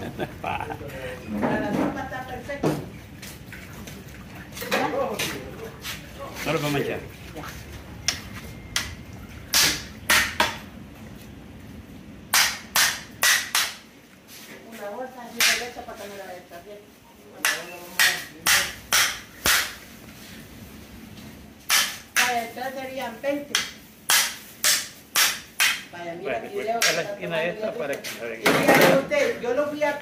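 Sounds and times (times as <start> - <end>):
cleaver chopping into wooden block: 21.7 - 22.3.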